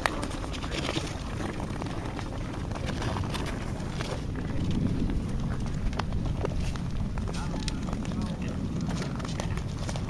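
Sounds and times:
faint voices: 0:00.0 - 0:10.0
ice skates clicking and scraping: 0:00.0 - 0:10.0
steady low rumble: 0:00.0 - 0:10.0.

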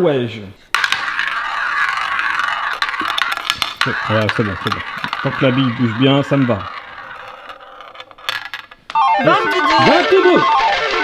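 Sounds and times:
ball rattling in roulette wheel: 0:00.7 - 0:11.0
ball clicking against wheel: 0:00.8 - 0:11.0.

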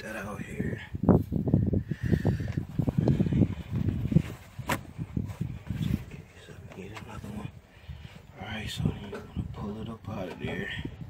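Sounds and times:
rustling and handling noise: 0:02.5 - 0:09.5.

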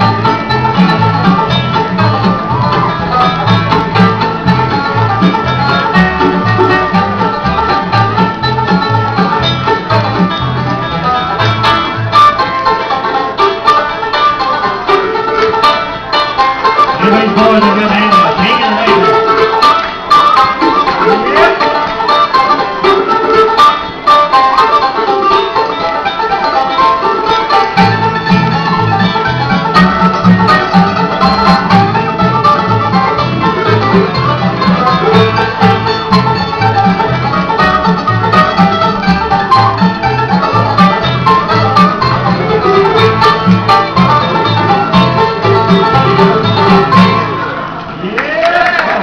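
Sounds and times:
banjo picking: 0:00.0 - 0:48.0
bluegrass band playing: 0:00.0 - 0:48.8.

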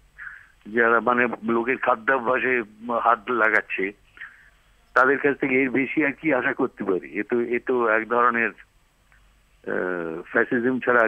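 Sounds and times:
man talking over phone line: 0:00.2 - 0:04.0, 0:05.0 - 0:08.6, 0:09.7 - 0:11.0.

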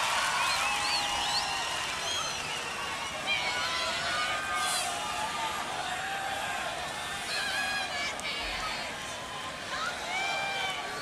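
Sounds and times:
crowd cheering and applauding: 0:00.0 - 0:11.0
whistles: 0:00.2 - 0:03.0.

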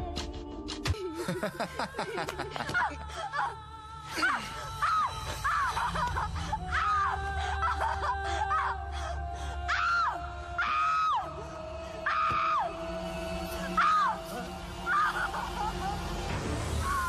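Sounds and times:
low steady drone: 0:02.1 - 0:17.0.

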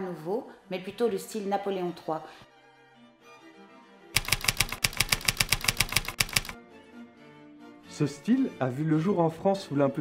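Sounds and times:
soft background music: 0:00.0 - 0:10.0
typewriter keys clacking: 0:04.2 - 0:06.6.

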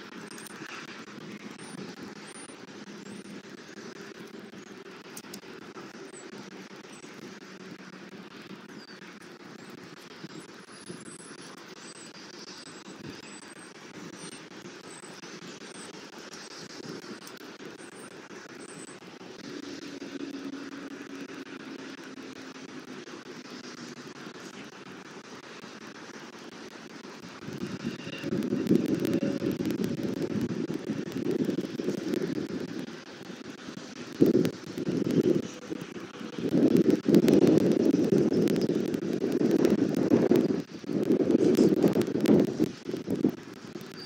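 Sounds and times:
distant traffic hum: 0:00.0 - 0:44.0
wind rumble on microphone: 0:00.0 - 0:44.0
faint high chirps: 0:01.5 - 0:03.3.

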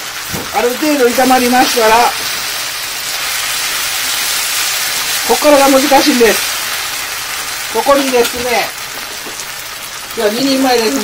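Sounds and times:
noodles sizzling in a frying pan: 0:00.0 - 0:11.0.

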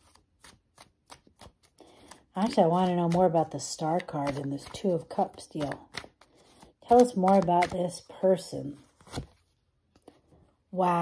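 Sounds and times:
tarot cards shuffling: 0:00.0 - 0:10.2.

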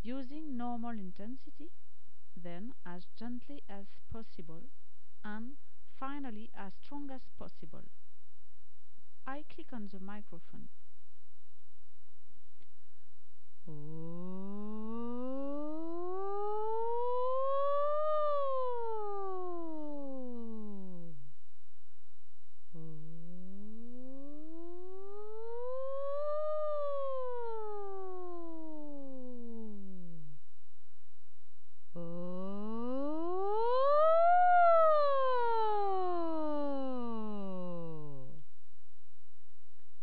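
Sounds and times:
woman's voice gliding up and down: 0:00.0 - 0:01.8, 0:02.4 - 0:07.9, 0:09.3 - 0:10.7, 0:31.9 - 0:38.4
person doing vocal siren: 0:13.7 - 0:21.2, 0:22.7 - 0:30.4, 0:32.0 - 0:38.4.

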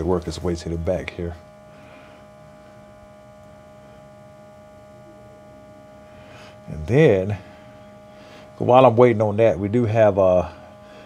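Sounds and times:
smoke machine electric hum: 0:00.0 - 0:11.0.

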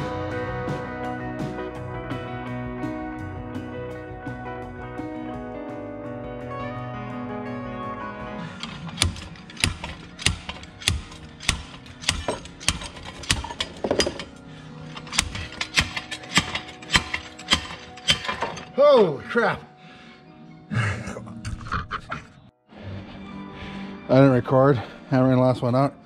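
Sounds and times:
background music: 0:00.0 - 0:26.0
slide hammer metallic clacks: 0:08.6 - 0:18.7
metal clang with ringing: 0:08.6 - 0:18.8.

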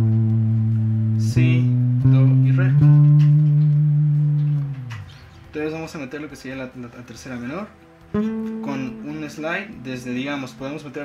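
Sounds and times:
clean electric guitar note: 0:00.0 - 0:05.2, 0:08.1 - 0:10.6.

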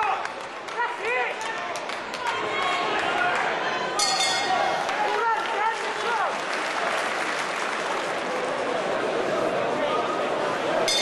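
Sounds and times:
boxing bell ringing: 0:04.0 - 0:04.6.

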